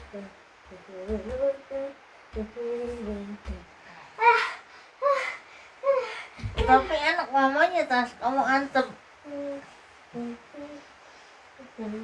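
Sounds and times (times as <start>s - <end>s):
person humming a slow tune: 0.0s - 3.7s, 9.3s - 10.9s, 11.6s - 12.0s
soft low thuds: 0.0s - 3.8s, 6.4s - 7.1s.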